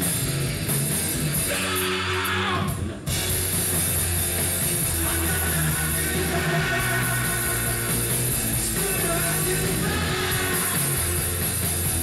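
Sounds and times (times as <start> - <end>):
drums: 0.0 - 12.0
electric guitar: 0.0 - 12.0.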